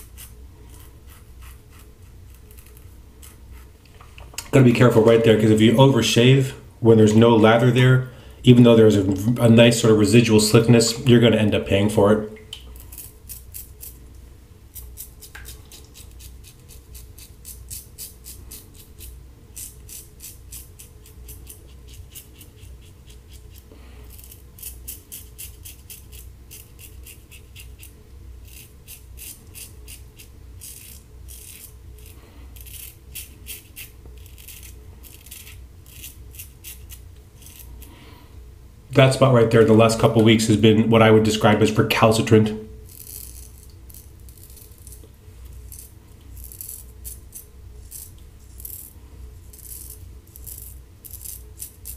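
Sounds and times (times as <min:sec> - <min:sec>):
razor scraping stubble: 0:00.0 - 0:03.9, 0:12.7 - 0:14.0, 0:14.7 - 0:37.9, 0:42.8 - 0:51.9.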